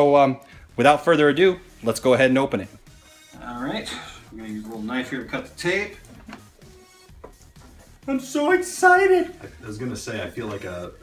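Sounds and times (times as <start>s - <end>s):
faint music: 0.0s - 11.0s.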